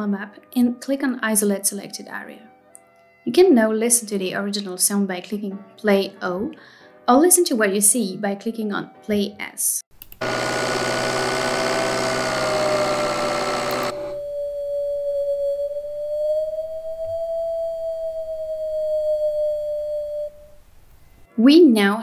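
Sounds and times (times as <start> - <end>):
turbocharger rushing noise: 10.2 - 14.3
turbo whistling whine: 10.2 - 21.3.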